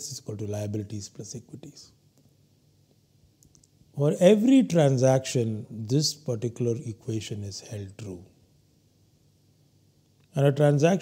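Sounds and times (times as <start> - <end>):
faint low hum: 0.0 - 11.0
small faint clicks: 2.1 - 3.8.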